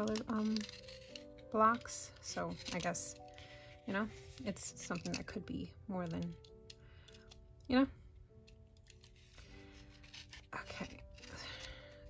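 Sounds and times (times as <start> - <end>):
knife blade scraping paper: 0.0 - 3.2, 8.8 - 12.0
faint background music: 0.0 - 12.0.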